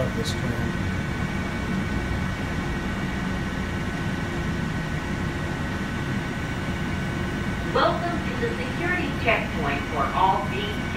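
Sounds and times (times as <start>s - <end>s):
moving car low rumble: 0.0s - 10.9s.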